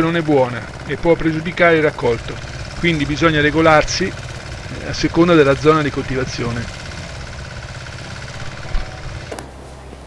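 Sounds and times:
distant small engine puttering: 0:00.0 - 0:10.0.

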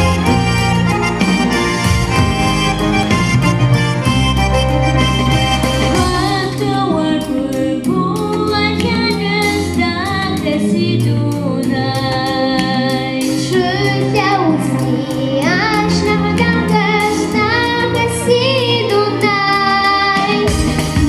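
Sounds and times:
instrumental music with steady beat: 0:00.0 - 0:21.0
child singing into a microphone: 0:06.0 - 0:21.0.

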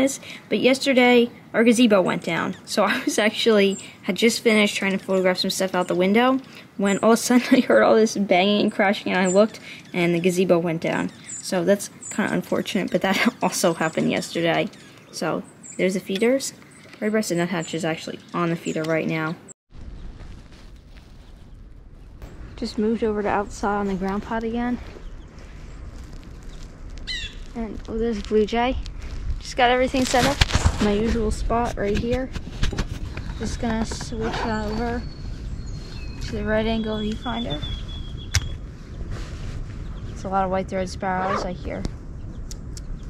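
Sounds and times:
steady low rumble: 0:19.7 - 0:43.0.

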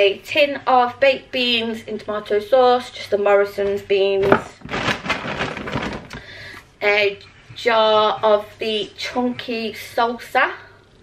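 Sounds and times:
plastic bag rustling: 0:04.2 - 0:06.6.

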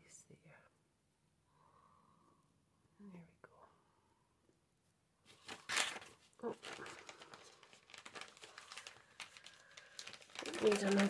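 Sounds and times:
packaging rustling and crinkling: 0:05.3 - 0:11.0.

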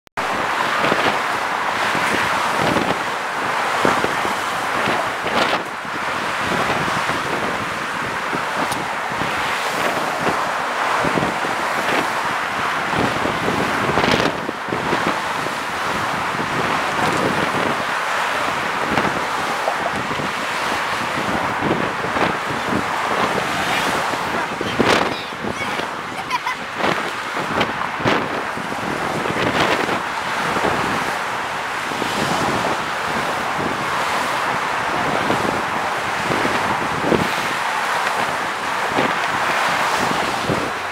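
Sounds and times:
road traffic passing: 0:00.2 - 0:40.9
wind on microphone: 0:00.2 - 0:40.9.

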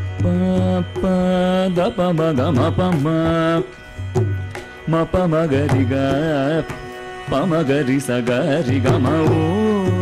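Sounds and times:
person singing: 0:00.0 - 0:03.8, 0:04.4 - 0:10.0
tanpura drone: 0:00.0 - 0:10.0
violin: 0:00.0 - 0:10.0.

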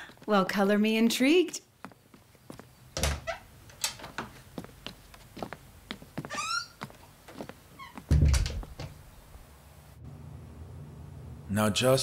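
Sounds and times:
door hinge creak: 0:03.0 - 0:04.0, 0:06.3 - 0:06.8
door shutting thud: 0:03.0 - 0:04.2, 0:08.1 - 0:09.0.

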